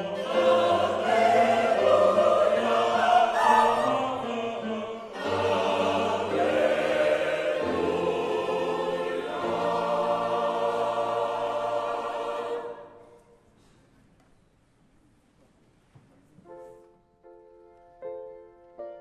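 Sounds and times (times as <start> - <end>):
mixed choir singing: 0.0 - 13.4.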